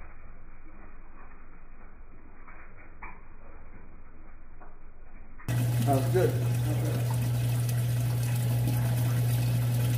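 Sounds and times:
aquarium pump hum: 0.0s - 9.9s
rushing water: 5.5s - 9.9s.

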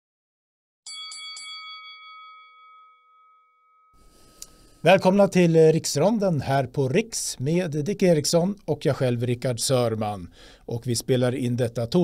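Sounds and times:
bell-like chime ringing: 0.9s - 4.4s.

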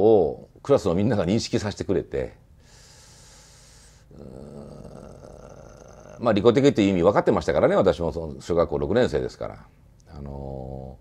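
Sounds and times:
man speaking: 0.0s - 2.4s, 4.1s - 11.0s
man humming low: 4.1s - 6.2s.

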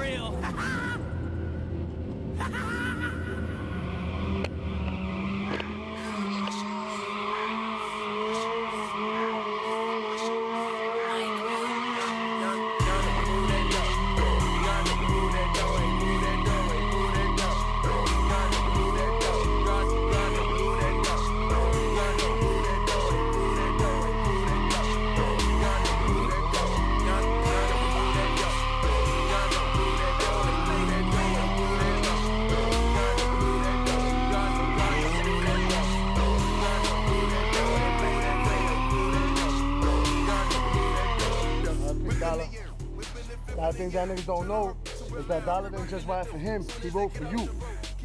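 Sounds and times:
hip-hop beat with heavy bass: 0.0s - 1.1s, 5.4s - 48.0s
motorcycle engine revving: 3.7s - 48.0s
tyre screeching: 3.7s - 48.0s.

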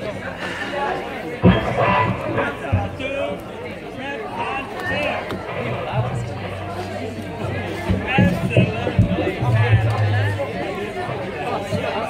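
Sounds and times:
crowd chatter: 0.0s - 12.0s
people talking near microphone: 0.0s - 12.0s
low thumps: 1.4s - 12.0s.

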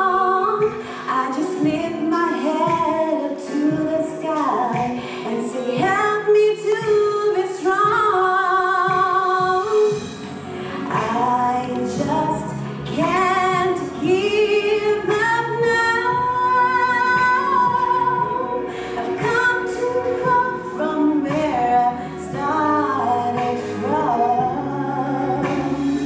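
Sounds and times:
woman singing into microphone: 0.0s - 26.0s.

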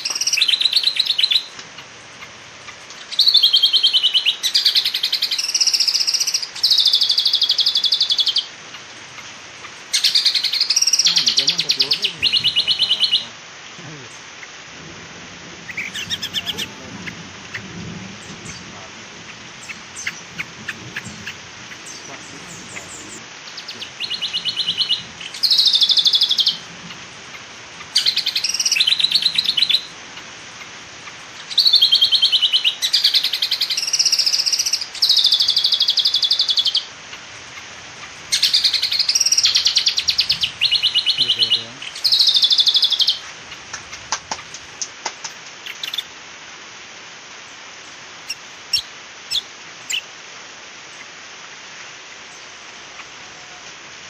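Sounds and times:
bird singing trilled phrases: 0.0s - 13.3s, 15.6s - 37.7s, 38.3s - 43.3s, 45.6s - 46.1s, 48.2s - 50.1s
faint clicks: 43.5s - 46.0s.

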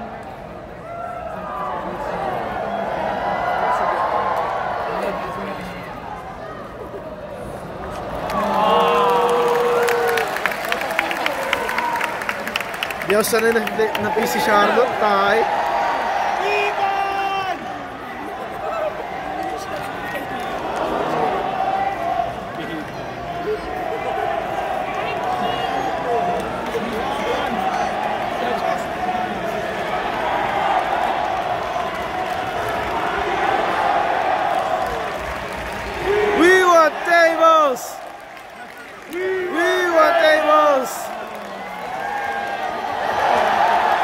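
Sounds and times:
crowd cheering: 0.0s - 44.0s
spectator shouting loudly: 8.3s - 10.3s, 14.0s - 17.9s, 36.0s - 38.1s, 39.1s - 44.0s.

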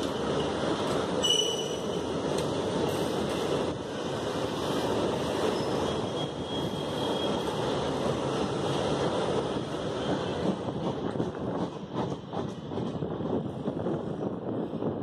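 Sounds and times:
freight train wheels rumbling: 0.0s - 15.0s.

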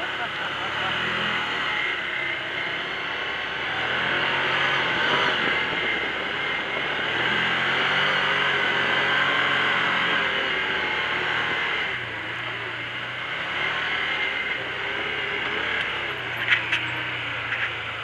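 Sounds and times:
engine running under throttle: 0.0s - 18.0s
tyres on dirt: 0.0s - 18.0s
wind noise: 4.8s - 8.5s.

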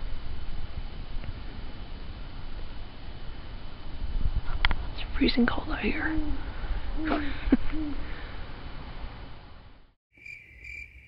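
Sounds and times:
steady hiss: 0.0s - 9.4s
cricket chirping: 10.1s - 11.0s.

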